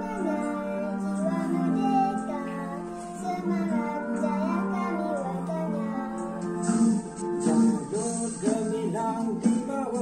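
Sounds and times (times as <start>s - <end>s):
child singing: 0.0s - 6.8s, 8.4s - 10.0s
musical backing track: 0.0s - 10.0s.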